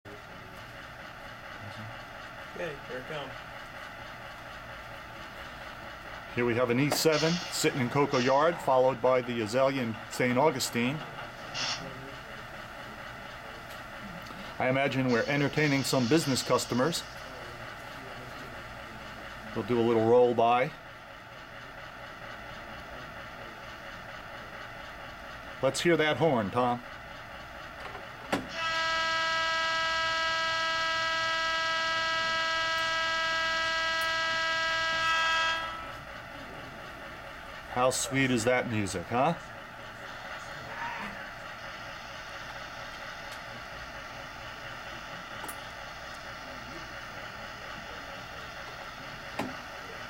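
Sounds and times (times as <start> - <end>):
model train rolling on track: 0.1 - 50.0.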